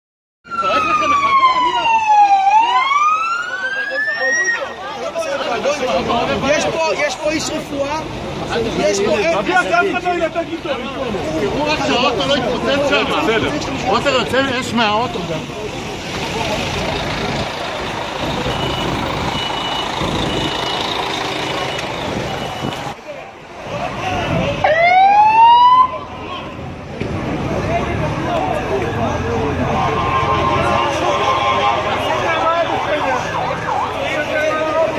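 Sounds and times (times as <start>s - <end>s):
emergency vehicle siren wailing: 0.4s - 6.0s, 15.9s - 23.0s, 23.7s - 26.5s, 28.3s - 34.9s
street noise: 0.4s - 34.9s
faint repeating beep: 18.4s - 22.9s.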